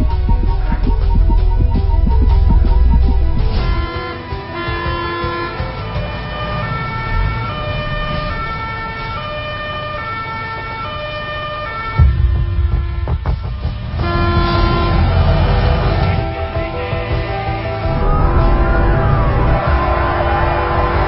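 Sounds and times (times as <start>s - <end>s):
loud low rumble with knocks: 0.0s - 4.2s, 12.0s - 16.7s
emergency vehicle siren: 0.0s - 13.2s, 17.8s - 21.0s
traffic rumble: 0.0s - 21.0s.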